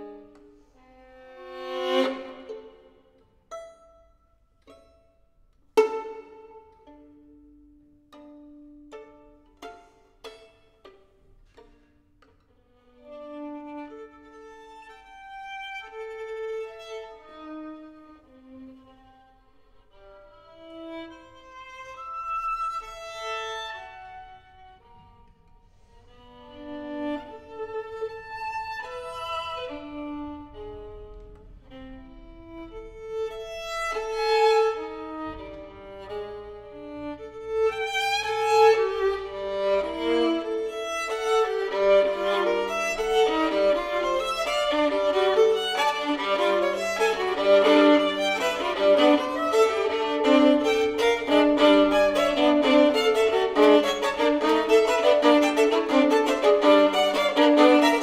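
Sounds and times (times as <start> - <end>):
solo violin playing: 0.0 - 58.0.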